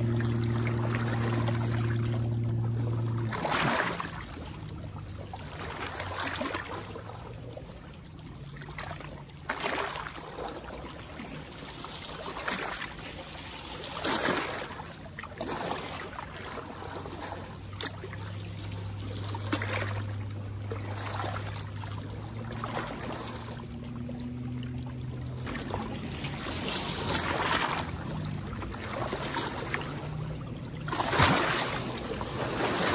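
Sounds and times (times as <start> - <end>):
low steady hum: 0.0 - 9.5, 10.2 - 32.9
waves lapping against rocks: 0.0 - 32.9.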